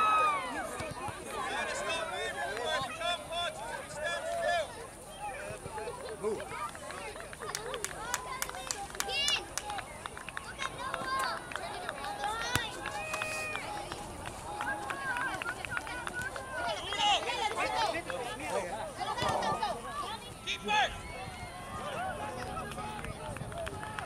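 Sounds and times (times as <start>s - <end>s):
people shouting and calling: 0.0s - 6.5s, 10.8s - 24.0s.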